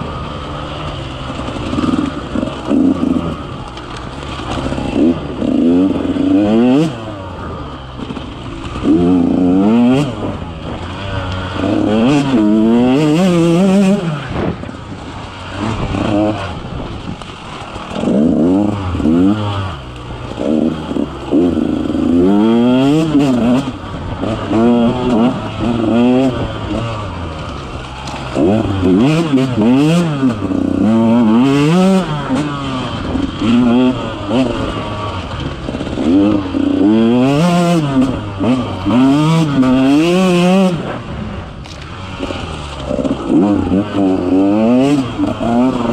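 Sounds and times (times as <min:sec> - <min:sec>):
dirt bike engine revving: 0:00.0 - 0:45.9.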